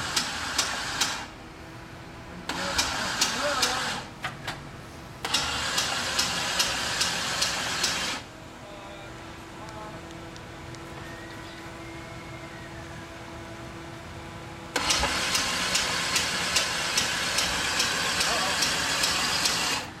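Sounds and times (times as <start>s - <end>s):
engine starting and running rough: 0.0s - 1.4s, 2.5s - 4.6s, 5.2s - 8.3s, 14.7s - 20.0s
steady hum: 0.0s - 20.0s.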